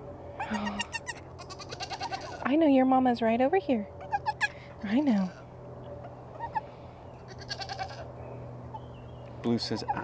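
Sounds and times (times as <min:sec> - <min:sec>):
goat bleating: 0:00.4 - 0:02.5, 0:04.0 - 0:08.1.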